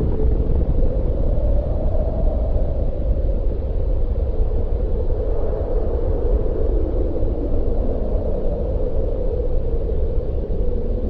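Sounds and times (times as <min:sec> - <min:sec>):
deep explosion rumble: 0:00.0 - 0:04.8.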